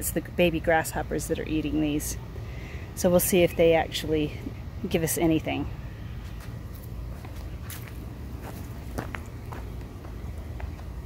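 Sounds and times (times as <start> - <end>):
footsteps in a garden: 5.4 - 11.0.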